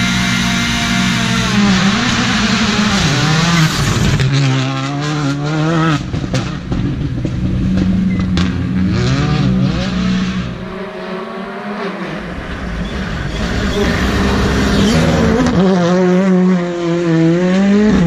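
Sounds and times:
car engine revving hard: 0:00.0 - 0:07.0, 0:07.6 - 0:18.0.

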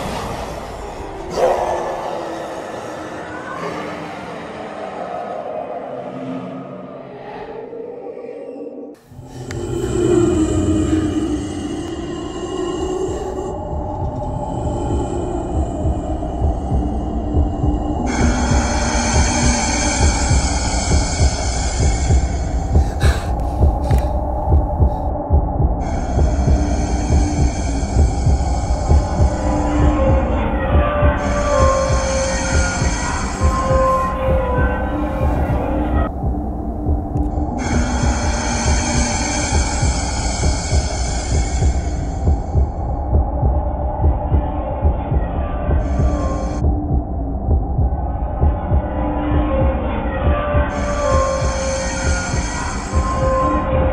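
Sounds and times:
dark drone: 0:00.0 - 0:53.9
higher horror soundtrack sounds: 0:00.0 - 0:53.9
low hum: 0:09.0 - 0:53.9
heartbeat-like thumping: 0:12.8 - 0:53.5.

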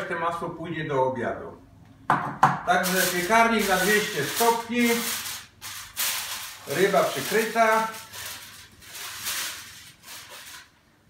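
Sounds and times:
aluminium foil crinkling: 0:02.8 - 0:10.8.

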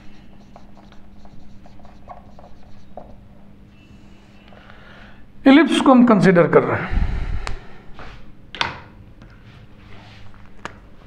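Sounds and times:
marker squeaking on whiteboard: 0:00.0 - 0:03.4.

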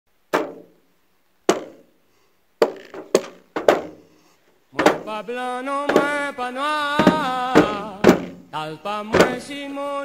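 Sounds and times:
sharp ringing knocks: 0:01.5 - 0:01.9, 0:02.6 - 0:04.1, 0:05.9 - 0:06.2, 0:09.2 - 0:09.5.

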